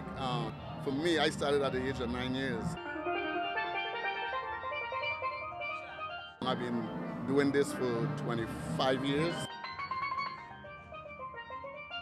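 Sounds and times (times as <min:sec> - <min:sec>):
steel pans playing melody: 0:00.0 - 0:12.0.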